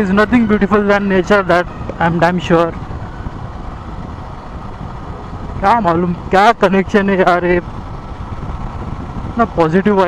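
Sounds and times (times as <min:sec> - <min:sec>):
motorcycle engine running: 0:00.0 - 0:10.0
wind rushing on microphone: 0:00.0 - 0:10.0.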